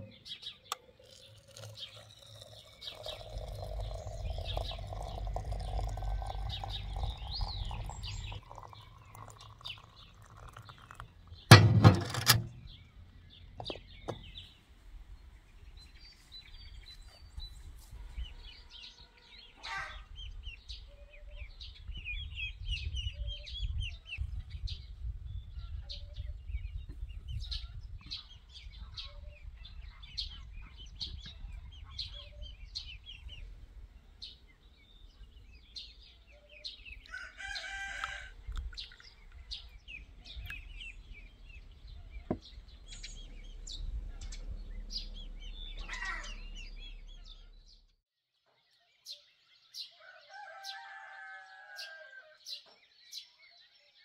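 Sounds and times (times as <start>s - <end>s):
small birds chirping: 0.0s - 11.7s, 12.4s - 54.0s
rooster crowing: 37.1s - 38.4s, 50.0s - 52.4s
low rumble: 40.0s - 47.9s.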